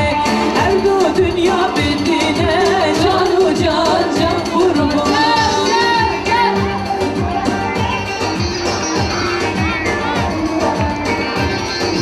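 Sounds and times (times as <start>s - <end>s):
woman singing into a microphone: 0.0s - 7.8s
steady drum beat: 0.0s - 12.0s.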